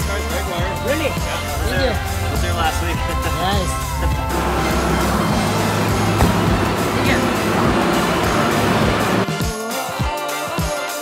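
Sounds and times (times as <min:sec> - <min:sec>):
background music: 0:00.0 - 0:11.0
truck engine running: 0:01.4 - 0:09.3.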